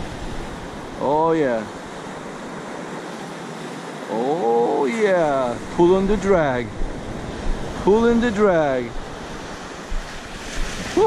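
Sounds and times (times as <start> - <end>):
ocean surf breaking on beach: 0.0 - 11.0.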